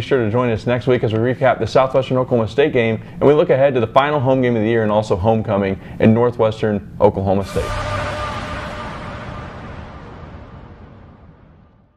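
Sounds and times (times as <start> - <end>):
faint held tone: 7.4 - 11.9
rushing wash of noise: 7.4 - 11.9.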